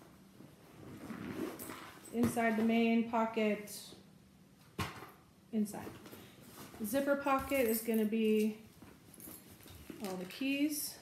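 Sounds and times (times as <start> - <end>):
small items handled: 6.0 - 10.7.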